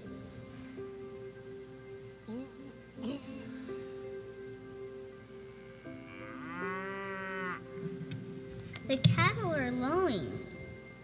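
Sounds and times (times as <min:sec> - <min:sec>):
soft background music: 0:00.0 - 0:11.0
cow mooing: 0:05.7 - 0:07.7.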